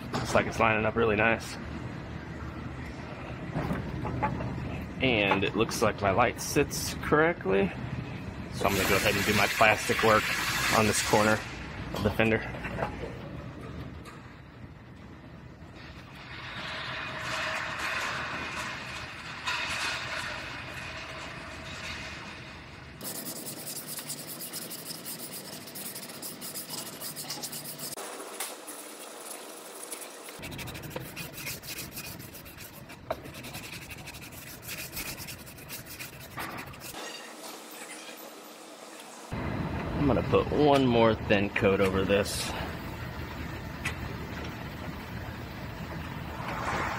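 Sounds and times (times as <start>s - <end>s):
hand sanding metal: 23.0s - 37.0s.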